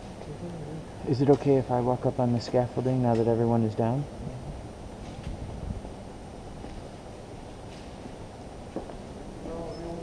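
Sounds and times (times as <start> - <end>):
steady low rumble: 0.0 - 9.7.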